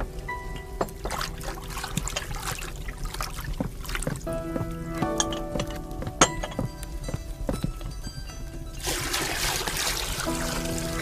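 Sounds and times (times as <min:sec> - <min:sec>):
background music: 0:00.0 - 0:11.0
water pouring into tub: 0:01.0 - 0:04.1, 0:08.8 - 0:11.0.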